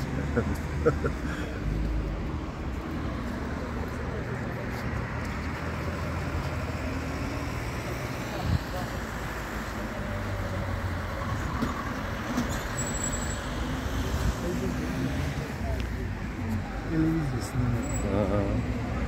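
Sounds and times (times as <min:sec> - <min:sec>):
road traffic noise: 0:00.0 - 0:19.0.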